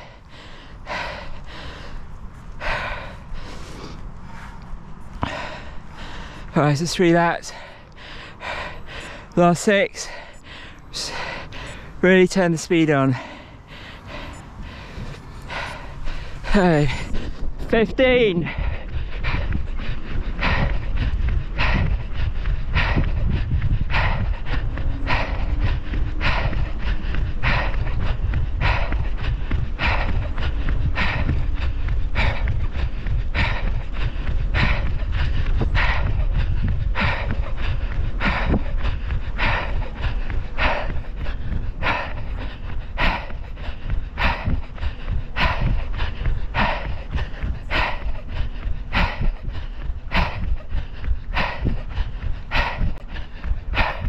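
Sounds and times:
person panting heavily: 0.0 - 54.0
low rumble: 13.0 - 54.0.

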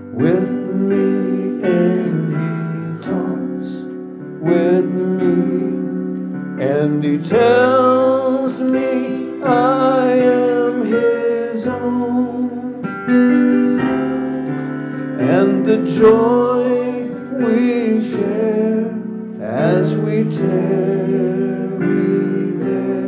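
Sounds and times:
man singing a hymn: 0.0 - 13.0, 15.2 - 23.0
electronic keyboard: 0.0 - 23.0.

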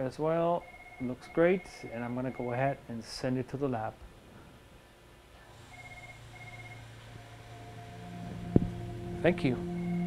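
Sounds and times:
soft ambient music: 5.7 - 10.0.

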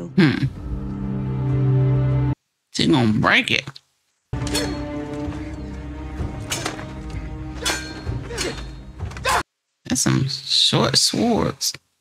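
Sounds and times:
swords clashing: 4.4 - 5.4, 6.4 - 9.4
orchestral score: 4.4 - 9.2.

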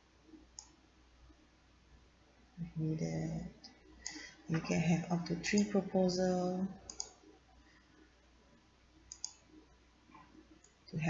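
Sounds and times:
computer mouse clicks: 0.6 - 0.8, 4.0 - 4.3, 6.9 - 7.2, 9.1 - 9.5.

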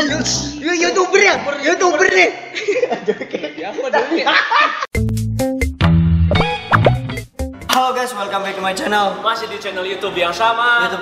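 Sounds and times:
men talking: 0.0 - 4.4, 7.7 - 11.0
men chuckling: 2.5 - 4.9.

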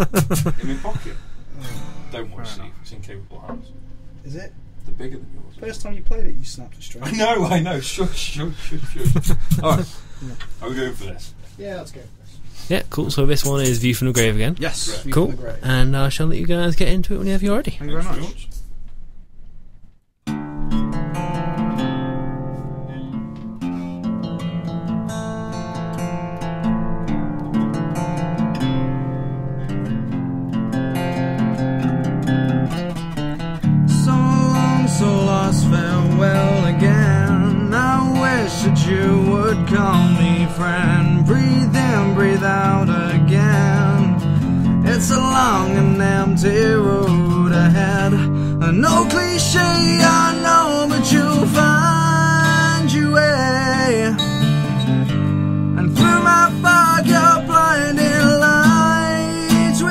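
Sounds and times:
acoustic guitar chords: 0.0 - 6.0, 13.1 - 14.5, 20.2 - 59.9
guitar melody with bending notes: 1.3 - 4.9, 20.3 - 59.9.

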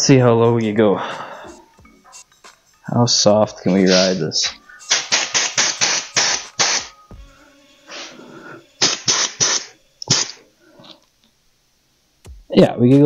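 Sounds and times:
compressed air hissing in bursts: 3.7 - 10.5.

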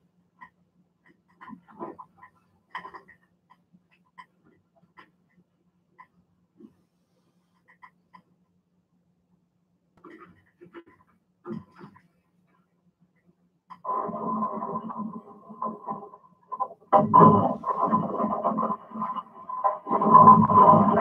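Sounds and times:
dense irregular noise: 13.8 - 21.0.

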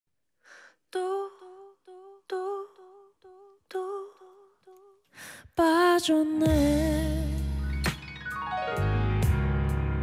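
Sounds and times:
short breath: 0.4 - 0.8, 5.1 - 5.5.

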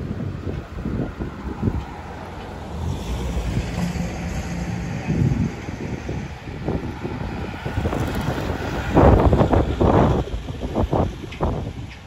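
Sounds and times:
low rumble of traffic: 0.0 - 12.0
wind buffeting microphone: 0.0 - 12.0.

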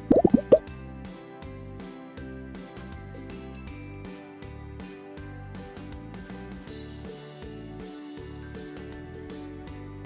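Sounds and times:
cartoon plop sound effects: 0.0 - 0.6.

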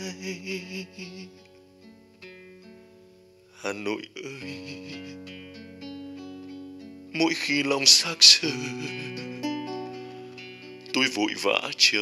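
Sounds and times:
soft acoustic guitar: 0.0 - 12.0.

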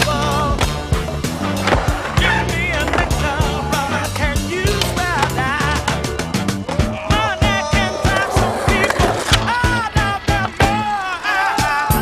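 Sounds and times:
loud music soundtrack: 0.0 - 12.0
skateboard trucks grinding ledge: 0.0 - 12.0
skateboard wheels rolling on concrete: 0.0 - 12.0.

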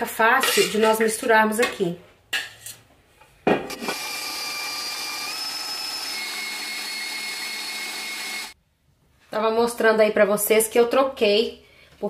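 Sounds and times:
stand mixer whisking: 3.9 - 8.6.

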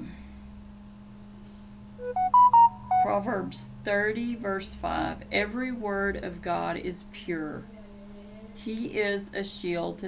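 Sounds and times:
electronic notification chime: 2.0 - 3.2.

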